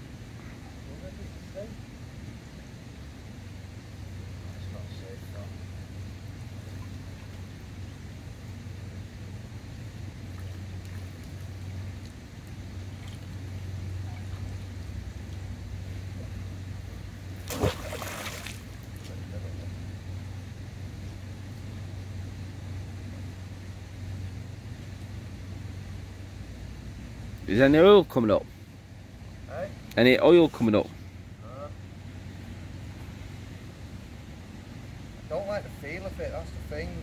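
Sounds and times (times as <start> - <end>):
faint outdoor background noise: 0.0 - 37.0
steady low hum: 0.0 - 37.0.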